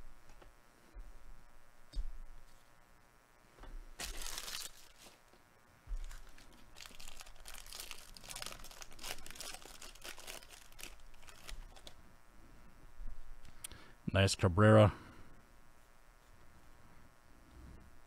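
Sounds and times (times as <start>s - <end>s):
foil wrapper tearing and crinkling: 4.0s - 5.2s, 6.0s - 12.0s.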